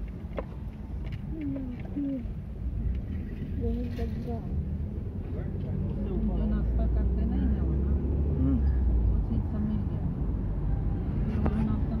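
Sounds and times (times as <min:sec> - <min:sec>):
car engine and road rumble: 0:00.0 - 0:12.0
people talking: 0:01.3 - 0:02.3, 0:03.6 - 0:04.6, 0:05.3 - 0:10.2, 0:11.4 - 0:12.0.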